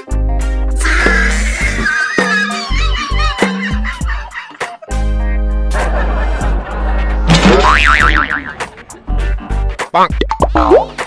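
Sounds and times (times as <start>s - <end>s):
comedy music: 0.5s - 11.0s.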